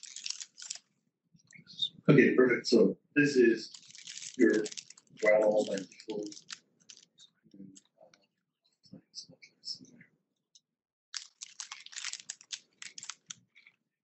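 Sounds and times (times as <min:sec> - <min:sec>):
computer keyboard typing: 0:11.2 - 0:13.7.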